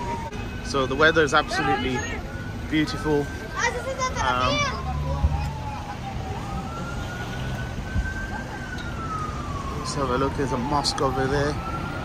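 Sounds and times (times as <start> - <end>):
emergency siren wailing: 0.0 - 12.0
street traffic rumble: 0.0 - 12.0.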